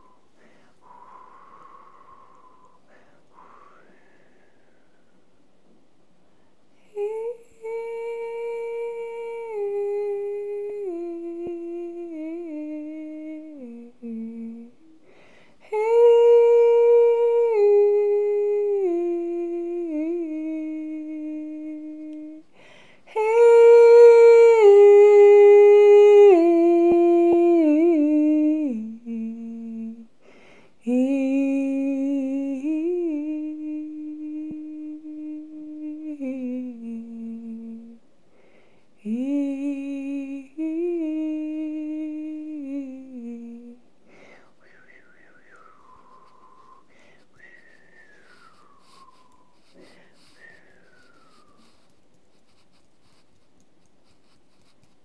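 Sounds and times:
woman humming: 0.0s - 5.0s, 6.8s - 15.0s, 15.6s - 22.5s, 23.1s - 30.1s, 30.9s - 38.0s, 39.0s - 43.8s, 44.4s - 53.4s.

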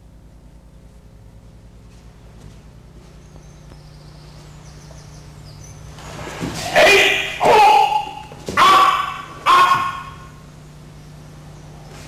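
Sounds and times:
people shouting sharply: 6.6s - 10.3s.

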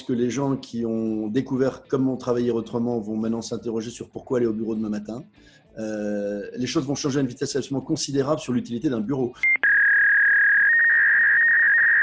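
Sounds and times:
high electronic beep tone: 9.4s - 12.0s
second higher beep tone: 9.4s - 12.0s.

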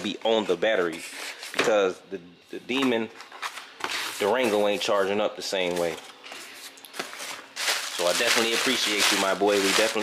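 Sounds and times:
rustling of cardboard and packaging: 2.9s - 10.0s.

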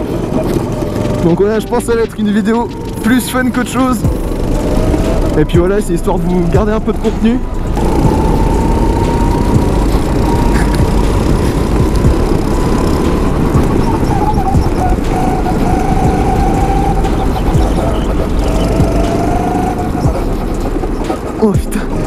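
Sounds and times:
go-kart engine running: 0.0s - 22.0s.

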